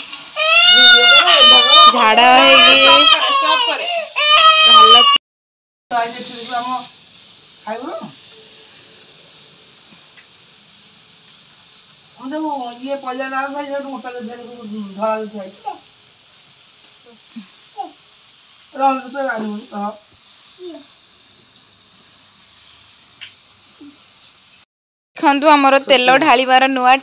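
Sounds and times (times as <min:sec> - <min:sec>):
background hiss: 0:00.0 - 0:05.2, 0:05.9 - 0:27.0
infant crying: 0:00.4 - 0:05.2
small child squeaking: 0:00.4 - 0:05.2.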